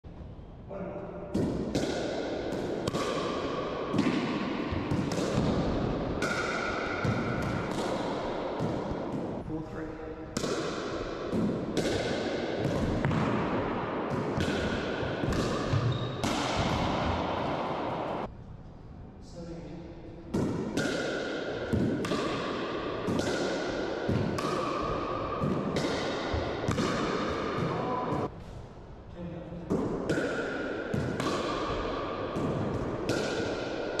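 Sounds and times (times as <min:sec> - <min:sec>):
ball bouncing off floor and walls: 0:01.3 - 0:09.4, 0:10.3 - 0:18.3, 0:20.3 - 0:28.3, 0:29.7 - 0:34.0
paddles striking ball: 0:01.3 - 0:09.4.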